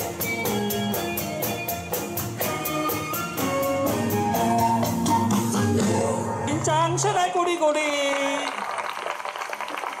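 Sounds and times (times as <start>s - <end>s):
audience applause: 7.9s - 10.0s.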